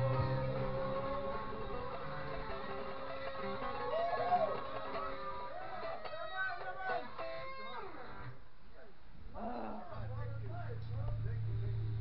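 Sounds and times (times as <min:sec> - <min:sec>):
guitar plucked notes: 0:00.0 - 0:08.4
voices: 0:00.0 - 0:12.0.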